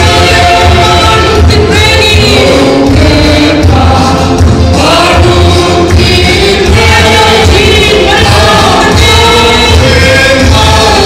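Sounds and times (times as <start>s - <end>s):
congregation singing a hymn: 0.0s - 11.0s
pulsing bass accompaniment: 0.0s - 11.0s.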